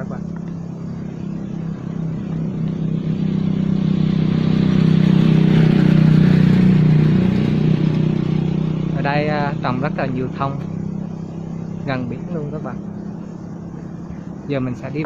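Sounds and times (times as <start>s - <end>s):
motorbike engine passing: 0.0s - 15.0s.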